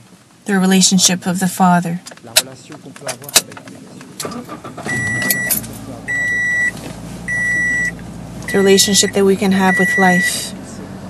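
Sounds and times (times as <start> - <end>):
electronic beeps: 4.9 - 6.7, 7.3 - 10.5.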